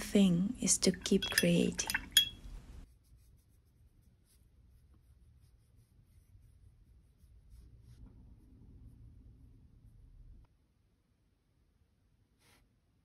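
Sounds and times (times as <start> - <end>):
brush strokes on paper: 2.8 - 10.0, 12.3 - 12.8.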